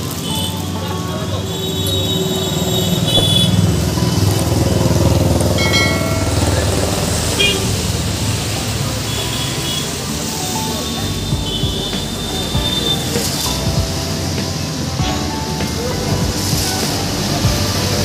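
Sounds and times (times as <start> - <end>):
background voices: 0.0 - 18.0
music: 0.0 - 18.0
vehicle noise: 0.0 - 18.0.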